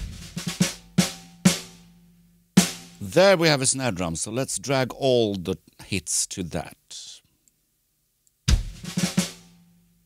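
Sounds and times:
sampled drum hits: 0.0s - 1.8s, 8.5s - 9.4s.

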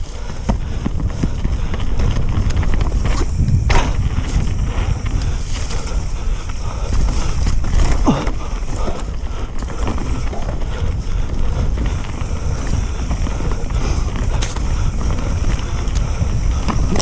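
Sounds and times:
bike clicks and rattles: 0.0s - 17.0s
bike tyres rolling on dirt: 0.0s - 17.0s
wind rushing over microphone: 0.0s - 17.0s.

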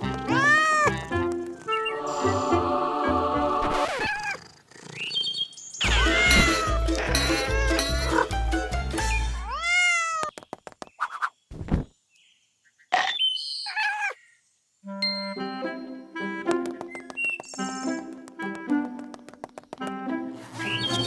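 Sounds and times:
playful background music: 0.0s - 3.8s, 5.8s - 9.4s, 14.9s - 21.0s
cartoon cat meows: 0.3s - 1.0s, 5.8s - 7.8s, 9.4s - 10.3s, 13.7s - 14.2s
quick run of clicks: 16.6s - 20.0s.

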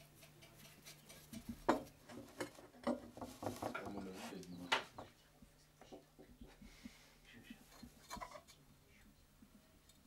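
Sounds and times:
light knocks and scrapes: 0.2s - 5.1s, 7.4s - 8.6s.

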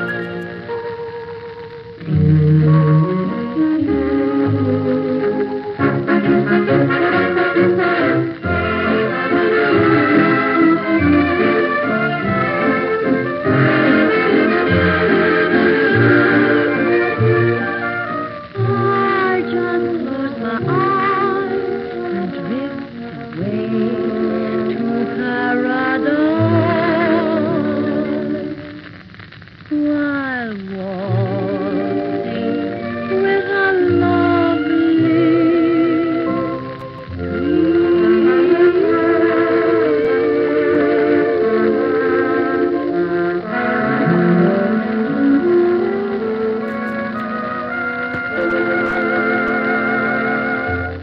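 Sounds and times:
dance orchestra playing slow song: 0.0s - 29.7s, 30.6s - 51.0s.

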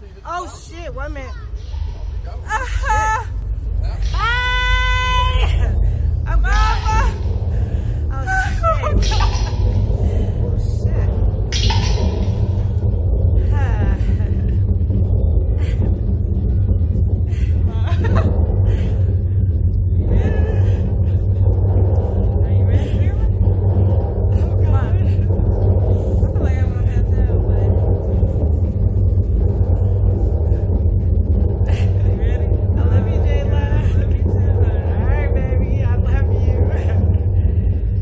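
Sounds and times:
ride machinery rumbling: 0.0s - 38.0s.

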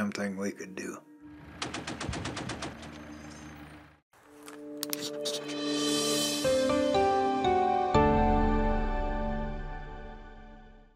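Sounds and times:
soft music: 0.0s - 1.4s, 4.2s - 10.9s.

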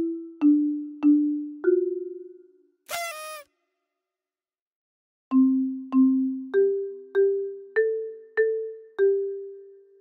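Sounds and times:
cartoon bird voice: 2.9s - 3.4s.

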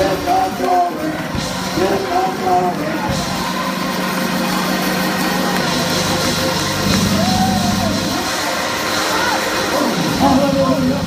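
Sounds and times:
sustained low chords: 1.2s - 8.8s.

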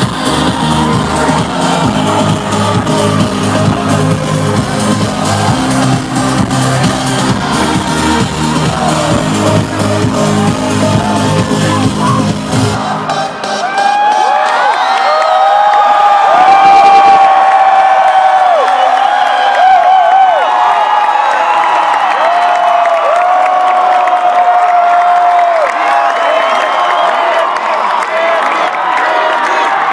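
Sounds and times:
electronic dance-pop music: 0.0s - 18.7s
crowd screaming and cheering: 0.0s - 29.9s.

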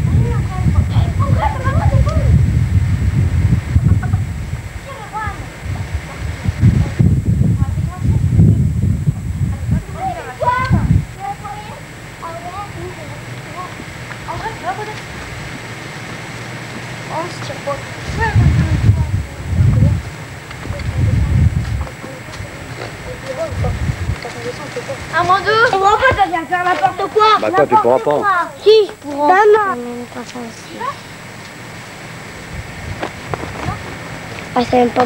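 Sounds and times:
constant low hum: 0.0s - 35.0s
even hiss: 0.0s - 35.0s.

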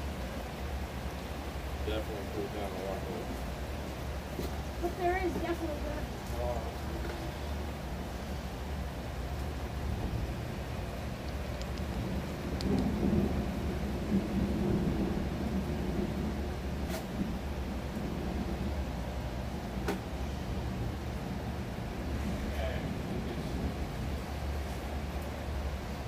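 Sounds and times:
distant thunder rumble: 0.0s - 26.0s
steady rain: 0.0s - 26.0s
sharp clicks: 11.2s - 12.9s.

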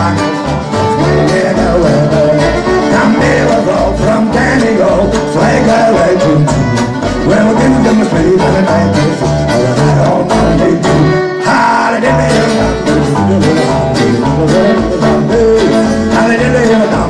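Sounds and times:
acoustic guitar strumming: 0.0s - 17.0s
double bass plucking: 0.0s - 17.0s.

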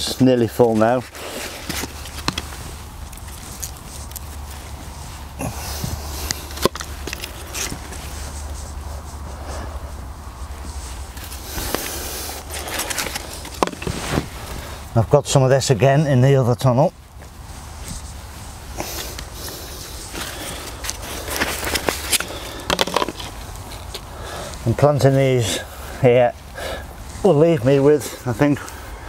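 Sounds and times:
light clicks and rustles: 0.0s - 14.8s
hands scraping soil: 0.0s - 15.9s, 17.2s - 28.8s
low steady hum: 0.0s - 29.0s.

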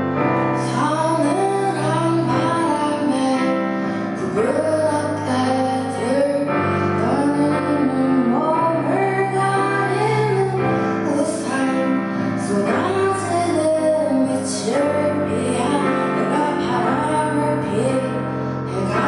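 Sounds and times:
digital piano: 0.0s - 19.0s
woman singing: 0.0s - 19.0s.

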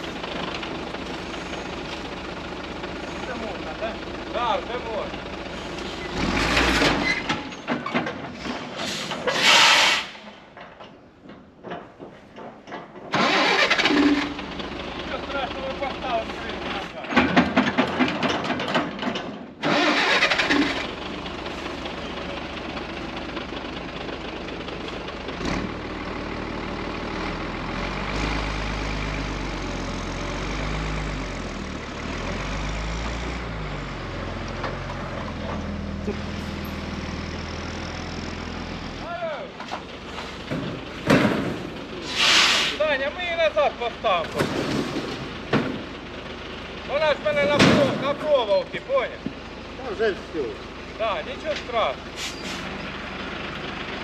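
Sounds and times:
truck diesel engine running: 0.0s - 8.7s, 13.1s - 54.0s.

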